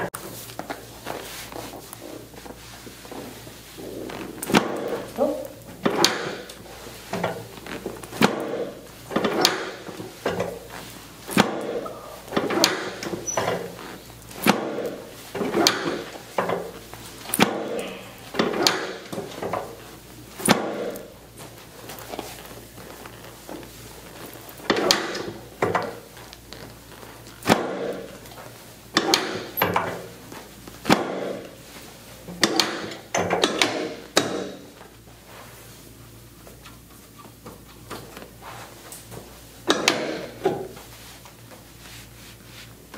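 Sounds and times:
treatment table knocking: 5.8 - 6.5.

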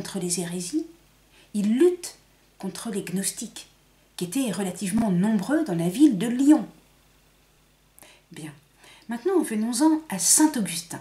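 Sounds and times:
woman breathing: 1.3 - 1.5, 8.0 - 9.1
woman speaking word: 1.6 - 6.8, 8.3 - 11.0.

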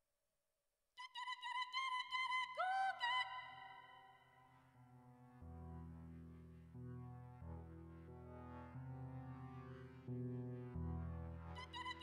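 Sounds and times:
low synth drone: 4.9 - 12.0
synth lead with bending notes: 4.9 - 12.0.

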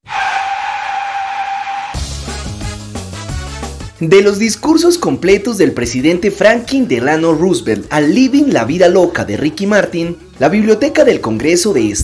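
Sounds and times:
car tyres screeching: 0.0 - 2.0.

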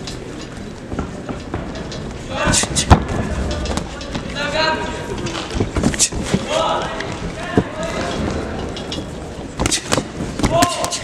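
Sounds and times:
sports hall background noise: 0.0 - 11.0.

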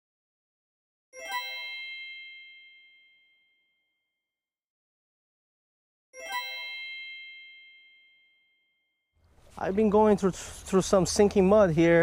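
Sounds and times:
bell-like chime: 1.2 - 4.0, 6.2 - 9.1.

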